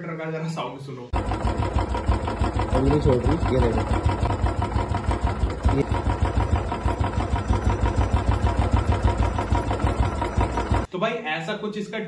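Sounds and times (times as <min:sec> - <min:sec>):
motorcycle engine idling with clatter: 0:01.1 - 0:10.9.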